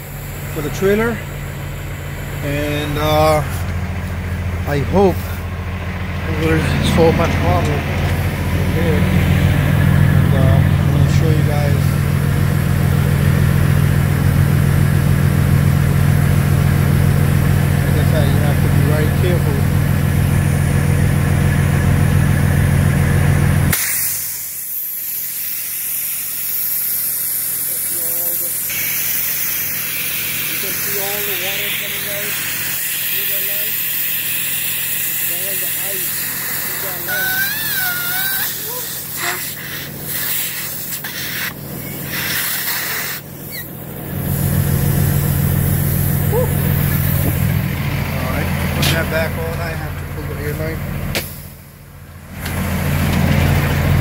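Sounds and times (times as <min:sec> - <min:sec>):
diesel truck engine idling: 0:00.0 - 0:23.7, 0:26.8 - 0:54.0
compressed air hissing: 0:23.7 - 0:47.6.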